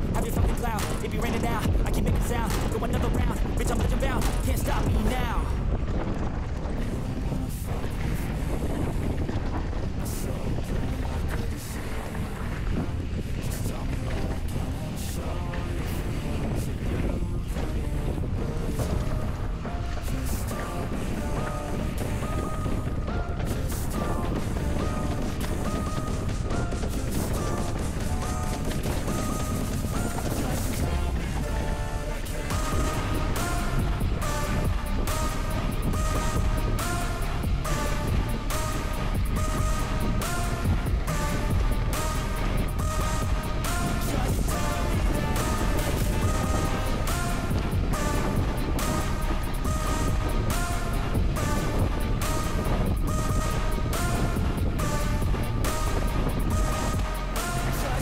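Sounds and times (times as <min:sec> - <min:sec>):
instrumental music with beat: 0:00.0 - 0:58.0.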